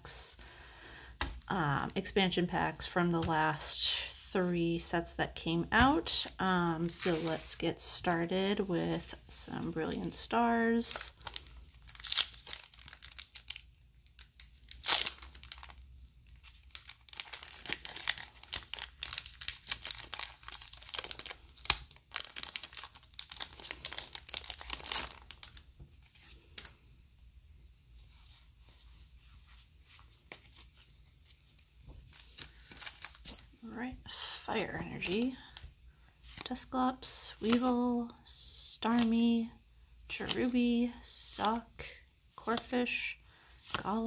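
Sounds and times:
foil pack rustling: 11.0s - 13.6s, 16.4s - 26.7s, 30.2s - 33.5s
foil wrapper tearing and crinkling: 11.1s - 26.7s, 32.1s - 33.5s.

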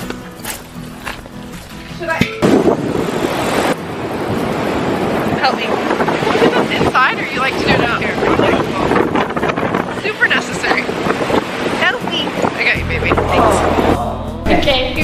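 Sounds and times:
wind buffeting microphone: 1.6s - 15.0s
women's voices: 5.3s - 9.0s, 9.9s - 11.0s, 11.8s - 15.0s.

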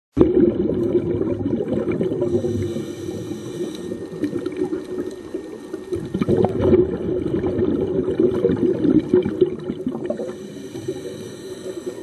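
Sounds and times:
underwater bubbling rush: 0.1s - 12.0s
small clicks underwater: 3.3s - 10.4s.

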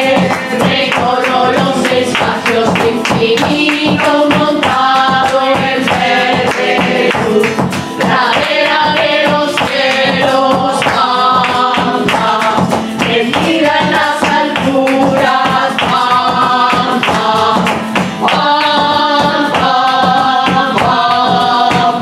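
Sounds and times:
flamenco guitar playing: 0.0s - 22.0s
maracas shaken: 0.0s - 22.0s
rhythmic hand clapping: 0.0s - 22.0s
women singing together: 0.0s - 22.0s.

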